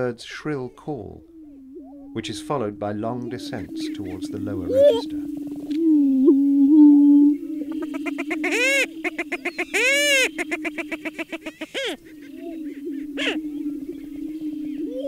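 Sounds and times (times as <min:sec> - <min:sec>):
prairie chickens cackling: 0:03.0 - 0:15.0
shrill bird calls: 0:07.7 - 0:15.0.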